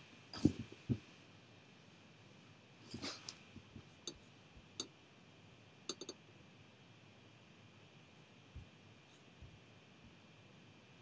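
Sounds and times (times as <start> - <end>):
faint irregular clicks: 5.9 - 6.3.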